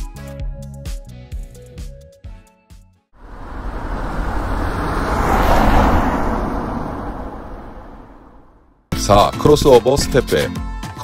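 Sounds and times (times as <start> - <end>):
whoosh transition effect: 3.2 - 8.8.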